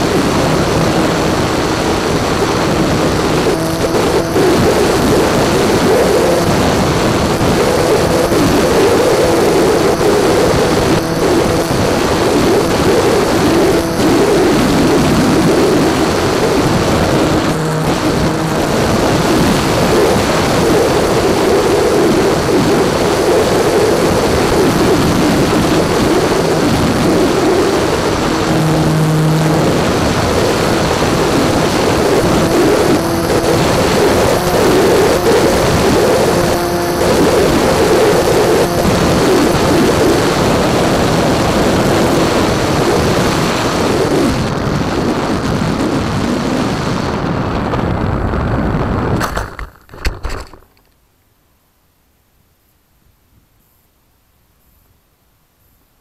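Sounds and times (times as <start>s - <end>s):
electric motor propeller buzzing: 0.0s - 44.3s
rush of wind noise: 0.0s - 50.8s.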